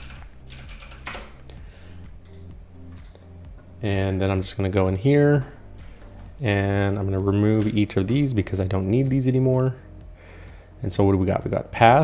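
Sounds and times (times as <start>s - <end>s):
computer keyboard typing: 0.0s - 1.5s.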